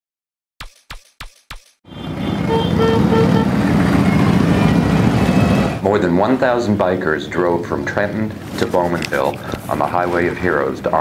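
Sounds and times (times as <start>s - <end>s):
horn toots: 1.8s - 5.8s
motorcycle engines running: 2.0s - 5.9s.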